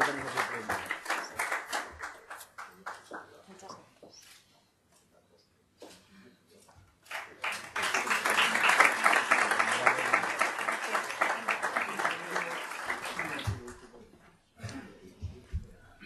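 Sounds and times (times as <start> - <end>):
audience applauding: 0.0 - 3.4, 7.1 - 14.0.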